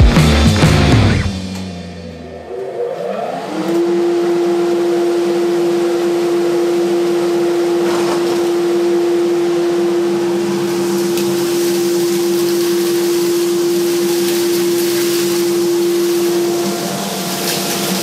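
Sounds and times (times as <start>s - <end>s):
dust collector motor humming: 0.0s - 18.0s.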